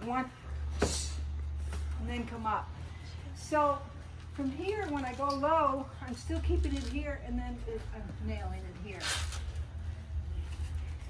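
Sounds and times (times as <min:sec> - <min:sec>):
fans humming: 0:00.0 - 0:11.0.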